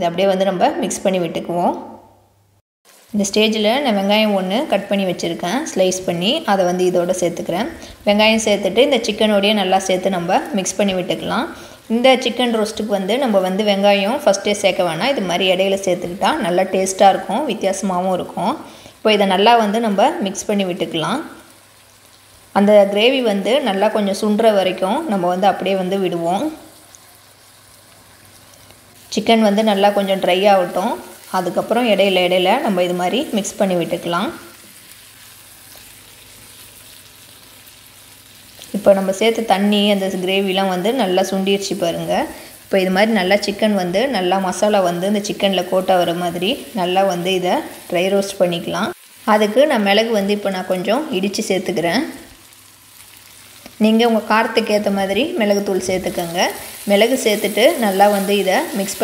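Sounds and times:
woman's voice: 0:00.0 - 0:02.1, 0:03.2 - 0:21.4, 0:22.6 - 0:26.6, 0:29.1 - 0:34.5, 0:38.7 - 0:52.3, 0:53.7 - 0:59.0
food sizzling in oil: 0:02.9 - 0:59.0.

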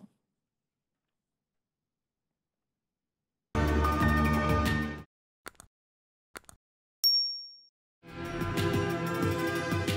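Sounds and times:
notification bell ding: 0:07.0 - 0:07.7
outro music with steady beat: 0:08.0 - 0:09.9.

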